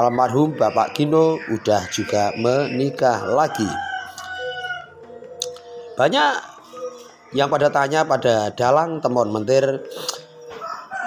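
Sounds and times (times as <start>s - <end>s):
rooster crowing: 3.0s - 8.1s, 10.4s - 11.0s.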